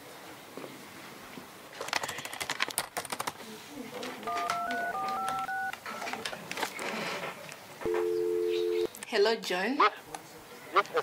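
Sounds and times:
touch-tone keypad beeps: 4.3 - 5.7, 7.9 - 8.9
two-note telephone line tone: 4.3 - 5.7, 7.9 - 8.9.

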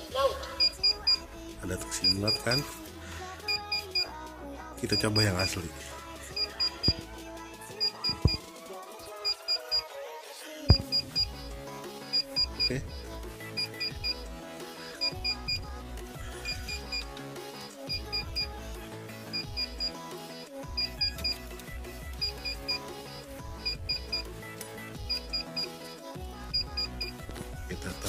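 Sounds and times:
banknote counter beeping: 0.6 - 1.2, 2.0 - 2.6, 6.4 - 7.0, 7.8 - 8.4, 10.7 - 11.4, 12.1 - 12.7, 13.6 - 14.2, 19.3 - 20.0, 20.8 - 21.4, 22.2 - 23.0, 23.6 - 24.2, 25.0 - 25.8, 26.5 - 27.2.

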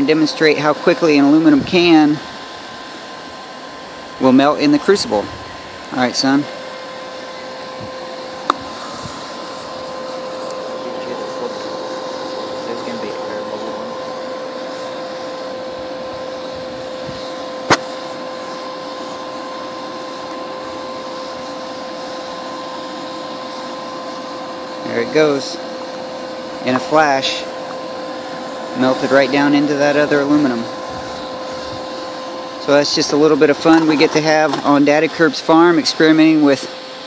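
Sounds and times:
hair dryer blowing air: 0.0 - 37.0.

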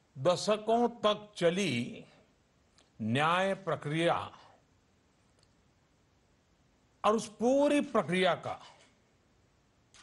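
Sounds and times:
man speaking: 0.2 - 2.2, 3.0 - 4.6, 7.0 - 8.8
faint click: 5.3 - 5.6.

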